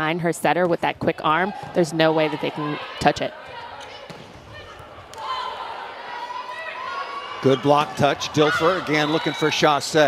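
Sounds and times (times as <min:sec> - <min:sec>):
low crowd noise: 0:00.8 - 0:10.0
volleyball hits: 0:01.5 - 0:06.7.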